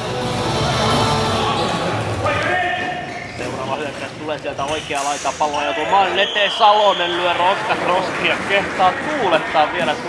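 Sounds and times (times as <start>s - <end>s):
knocks echoing in sports hall: 0.0s - 10.0s
players' voices echoing: 0.8s - 10.0s.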